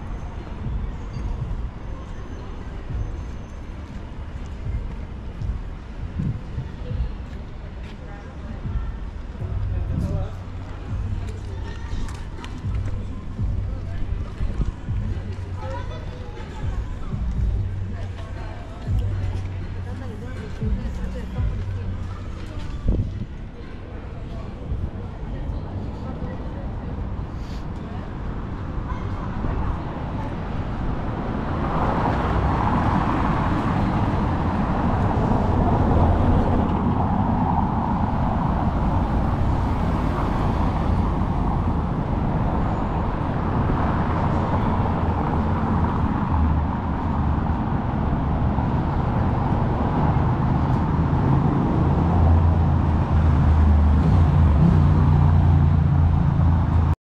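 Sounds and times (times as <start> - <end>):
cars passing on street: 0.0 - 57.0.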